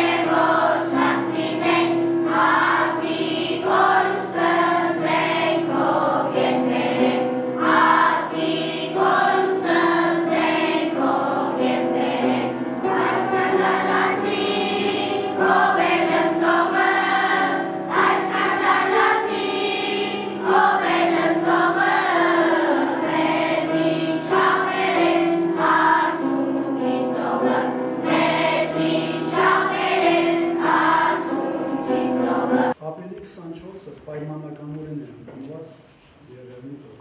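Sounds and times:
children's choir singing: 0.0s - 32.8s.

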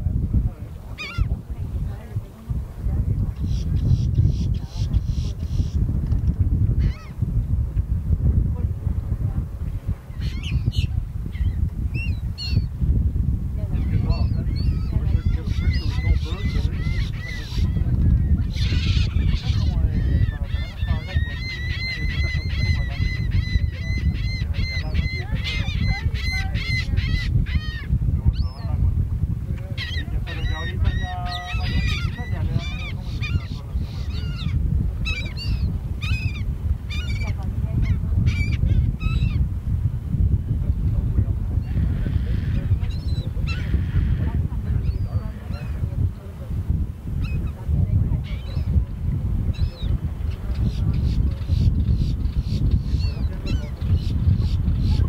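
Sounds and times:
gulls calling: 1.0s - 2.1s, 6.8s - 7.2s, 10.1s - 12.7s, 13.7s - 28.7s, 29.7s - 39.4s, 41.6s - 45.9s.

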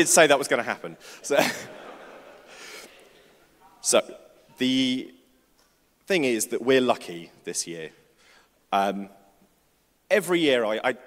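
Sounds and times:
man speaking: 0.0s - 1.8s, 3.7s - 5.3s, 6.0s - 8.0s, 8.7s - 9.3s, 10.1s - 11.0s.

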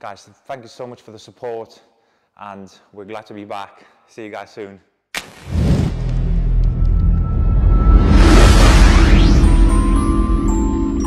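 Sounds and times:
sharp hit: 5.2s - 10.8s
deep rumble: 5.8s - 11.0s.

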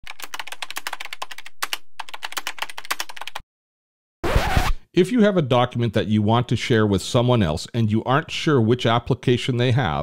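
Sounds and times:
rapid typing on keyboard: 0.0s - 3.4s.

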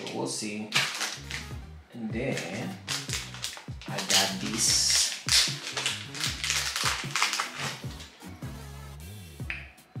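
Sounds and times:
packaging crinkling and rustling: 0.0s - 1.5s, 2.4s - 8.1s
background music with sliding bass: 0.0s - 10.0s.

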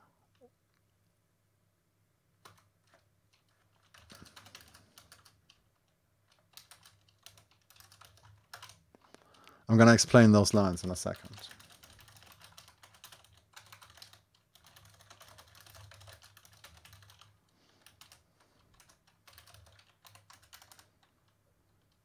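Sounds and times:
computer keyboard typing: 2.4s - 9.6s, 10.5s - 22.0s.

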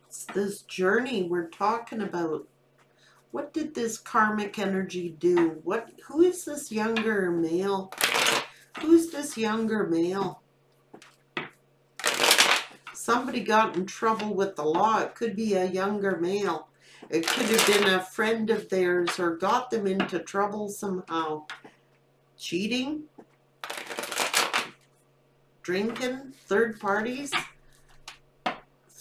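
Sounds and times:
cards being shuffled: 7.9s - 9.0s, 12.0s - 12.9s, 17.2s - 17.9s, 23.6s - 24.9s.

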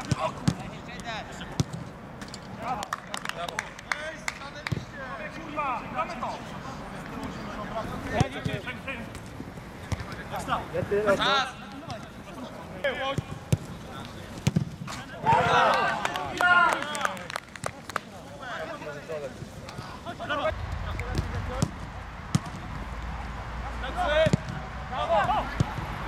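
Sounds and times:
players shouting: 14.9s - 17.3s, 18.2s - 26.0s
football being kicked: 20.8s - 22.8s, 24.2s - 25.8s.

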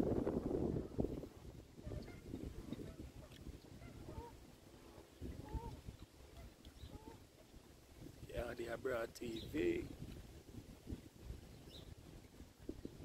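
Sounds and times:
wind rumble on microphone: 0.0s - 13.0s.

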